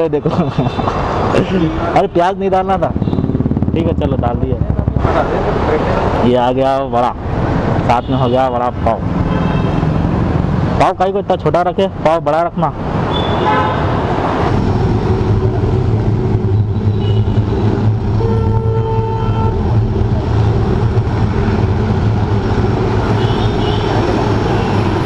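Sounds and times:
city street traffic: 0.0s - 25.0s
vehicle horns honking: 9.2s - 10.1s, 13.1s - 14.1s, 16.7s - 19.7s, 23.0s - 24.9s.

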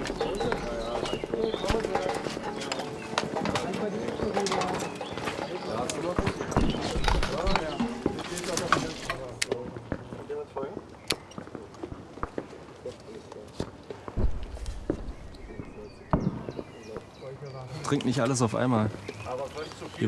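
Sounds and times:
clicks and knocks of handled kit: 0.0s - 9.6s
men's voices murmuring: 0.0s - 20.0s
low thump: 14.2s - 16.7s.

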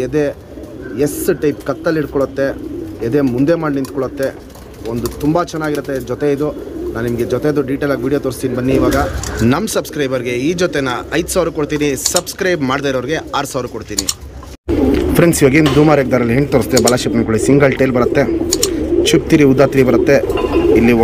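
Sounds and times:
pigeons cooing: 0.0s - 21.0s.

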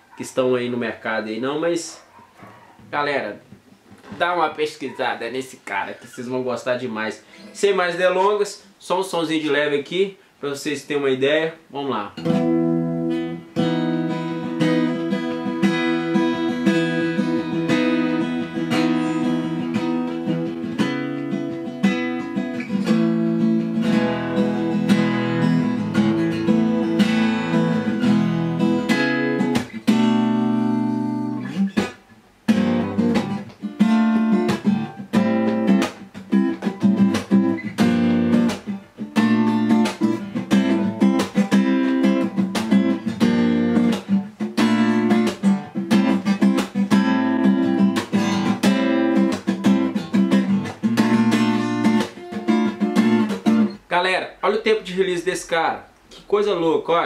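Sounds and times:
acoustic guitar strummed in chords: 12.2s - 53.8s.

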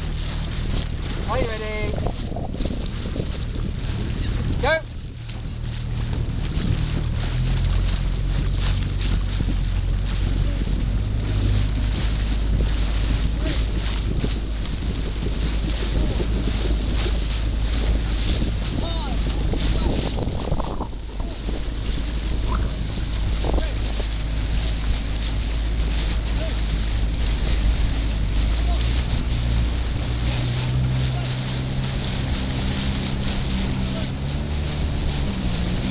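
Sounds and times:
outboard motor running: 0.0s - 35.9s
water rushing past hull: 0.0s - 35.9s
wind buffeting microphone: 0.0s - 35.9s.

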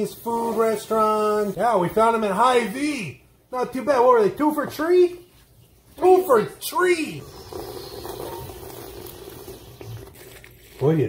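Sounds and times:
soda being slurped: 7.2s - 10.8s.

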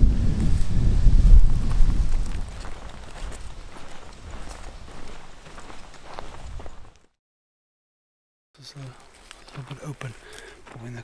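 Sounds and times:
wind buffeting microphone: 0.0s - 6.9s
footsteps on dry grass: 0.2s - 7.2s, 8.6s - 11.0s.

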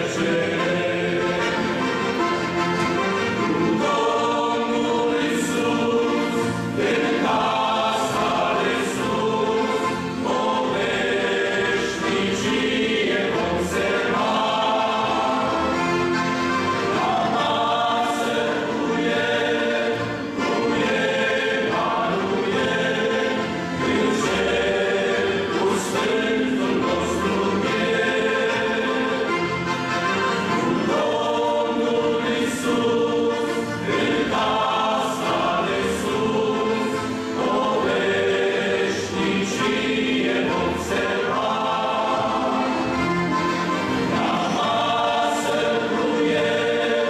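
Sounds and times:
men's choir singing a hymn: 0.0s - 47.0s.

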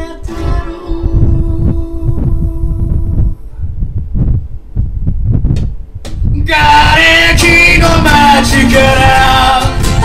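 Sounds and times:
person singing: 0.0s - 3.5s, 6.4s - 10.0s
low thumping beats: 0.0s - 10.0s.

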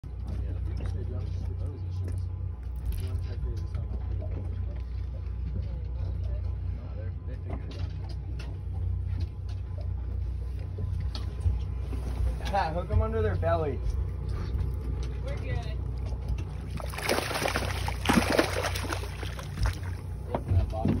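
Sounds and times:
outboard engines idling: 0.0s - 21.0s.

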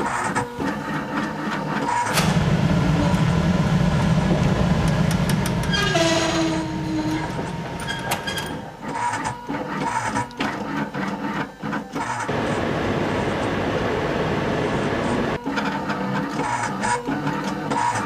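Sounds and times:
machinery rumbling: 2.1s - 9.3s, 12.3s - 15.4s.

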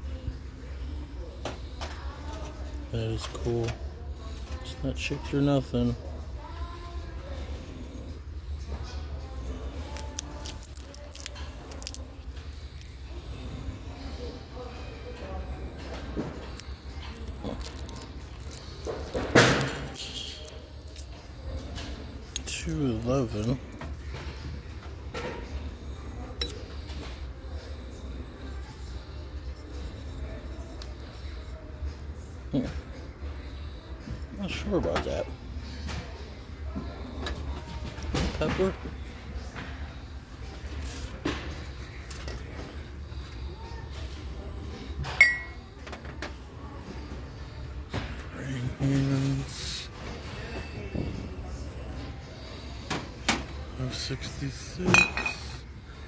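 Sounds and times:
low store hum: 0.0s - 56.0s
ceramic clinking against metal shelf: 45.2s - 45.6s, 54.8s - 55.4s.

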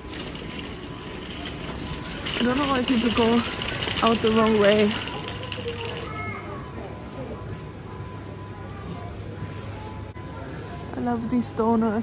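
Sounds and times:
supermarket background noise: 0.0s - 12.0s.

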